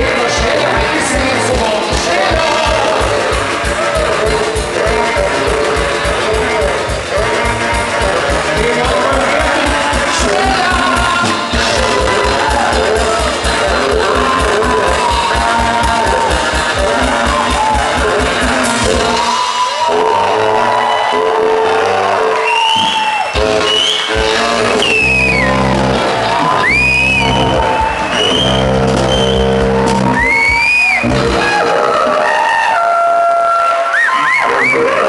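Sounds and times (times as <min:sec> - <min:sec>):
brass band music: 0:00.0 - 0:33.9.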